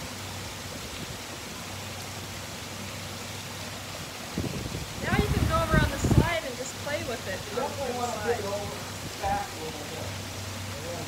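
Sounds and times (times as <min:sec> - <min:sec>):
waterfall splashing into pool: 0:00.0 - 0:11.0.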